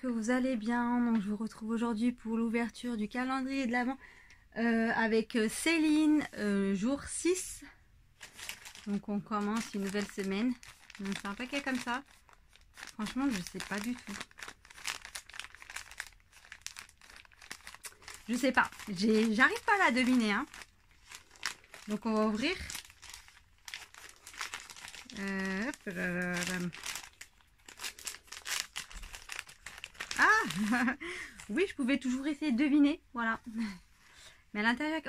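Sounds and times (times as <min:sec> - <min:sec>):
wrapping paper crinkling: 0:08.1 - 0:32.0.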